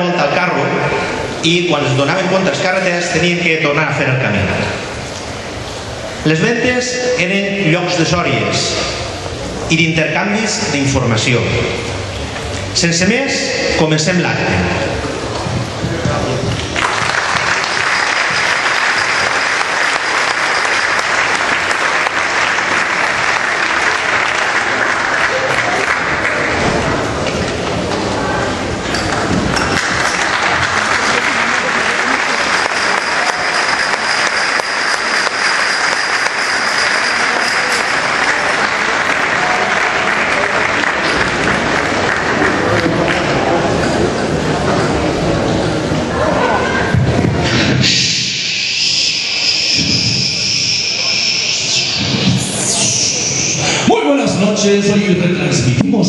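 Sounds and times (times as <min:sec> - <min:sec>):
audience applauding: 0:16.5 - 0:27.2, 0:29.5 - 0:43.6.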